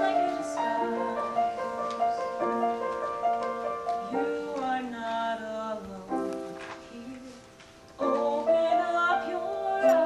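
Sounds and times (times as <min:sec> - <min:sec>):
woman singing: 0:00.0 - 0:02.5, 0:03.6 - 0:10.0.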